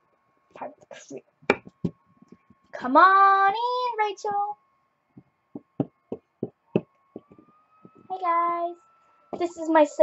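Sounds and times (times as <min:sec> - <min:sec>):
faint steady whine: 0:00.0 - 0:10.0.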